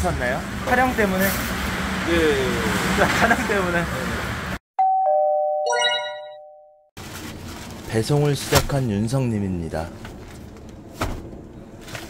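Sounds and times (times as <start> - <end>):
twinkle of high notes: 4.8 - 6.7
two-note ding-dong chime: 4.8 - 6.8.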